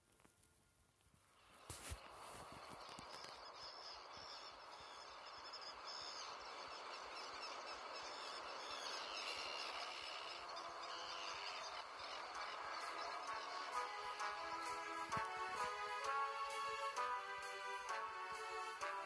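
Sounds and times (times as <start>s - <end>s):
outdoor ambience hiss: 0.0s - 19.0s
faint bird-like chirps: 1.3s - 13.7s
children's song music: 11.7s - 19.0s.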